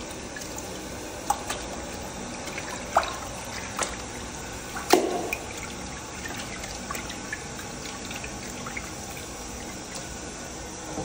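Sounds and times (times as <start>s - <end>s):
toilet flushing: 0.0s - 11.0s.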